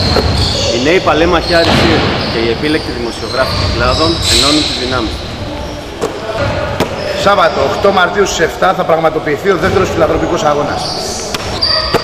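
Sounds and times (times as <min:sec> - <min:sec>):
basketball bouncing on wooden floor: 0:00.0 - 0:00.6.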